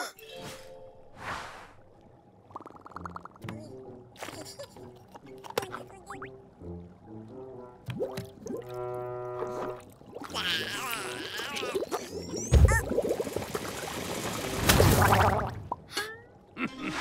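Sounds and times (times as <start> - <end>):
cartoon background music: 2.5 - 13.3.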